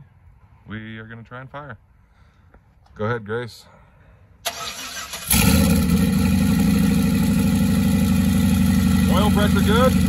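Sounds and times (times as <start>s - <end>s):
starter cranking engine: 4.5s - 6.1s
engine idling: 4.5s - 10.0s.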